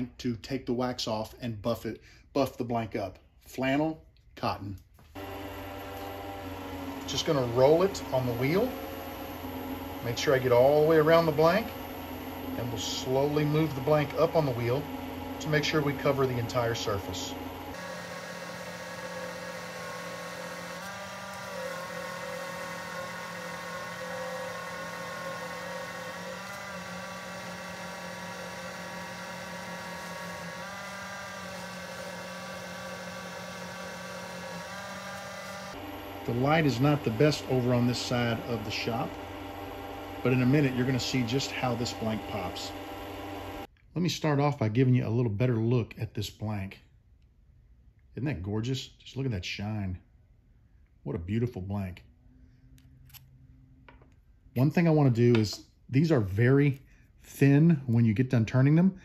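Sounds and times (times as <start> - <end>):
lathe motor hum and whir: 5.1 - 43.7.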